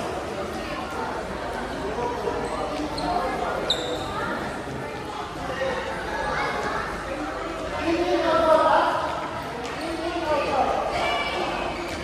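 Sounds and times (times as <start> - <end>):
players calling and chattering: 0.0 - 12.0.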